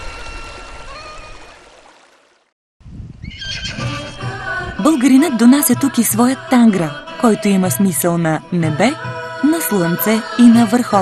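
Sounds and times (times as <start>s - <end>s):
horse whinnying: 3.2s - 4.0s.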